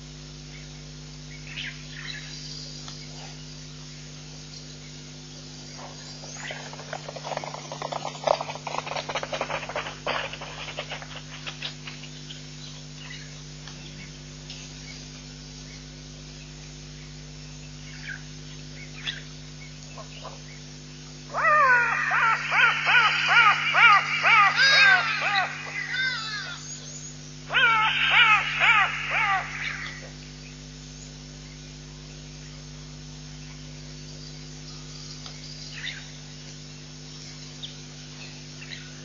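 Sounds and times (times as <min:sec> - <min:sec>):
low hum: 0:00.0 - 0:39.0
bird calling rapid sweeping notes: 0:21.3 - 0:30.1.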